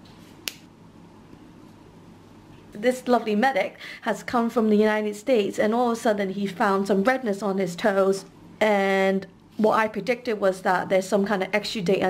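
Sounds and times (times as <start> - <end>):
faint room noise: 0.0 - 12.0.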